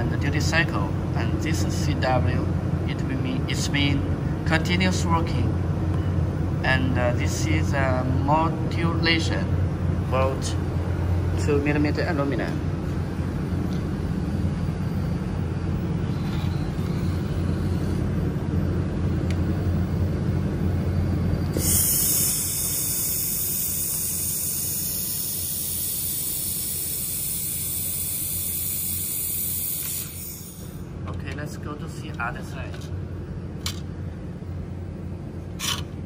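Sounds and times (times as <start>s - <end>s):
low machine hum: 0.0s - 36.0s
laser welder hissing: 21.5s - 30.9s.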